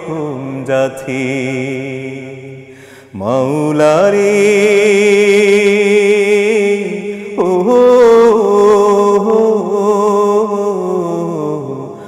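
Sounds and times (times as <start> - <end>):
man singing a long note: 0.0 - 12.0.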